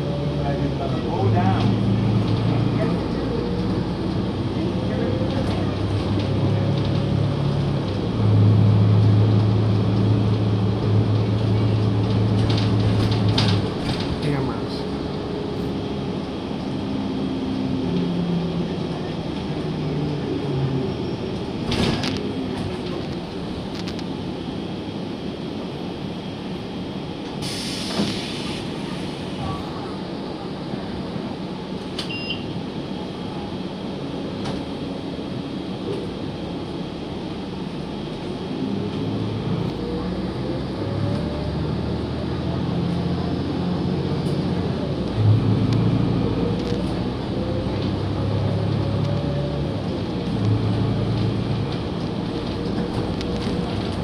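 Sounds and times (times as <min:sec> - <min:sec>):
bus engine and road noise: 0:00.0 - 0:54.0
air hiss: 0:27.4 - 0:29.4.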